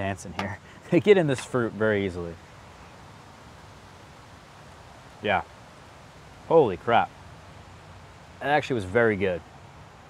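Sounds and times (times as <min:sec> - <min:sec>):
faint even hiss: 0:00.0 - 0:10.0.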